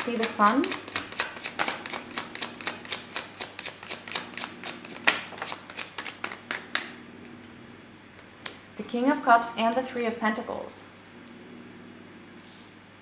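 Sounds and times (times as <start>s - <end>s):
cards being shuffled: 0.0s - 7.0s.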